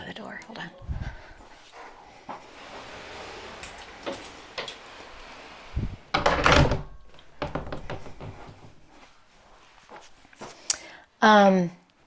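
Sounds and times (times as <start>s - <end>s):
door shutting and latching: 2.8s - 8.7s.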